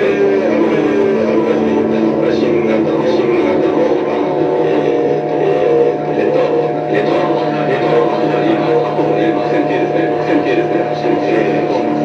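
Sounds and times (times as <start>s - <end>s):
electronic drone music: 0.0s - 12.0s.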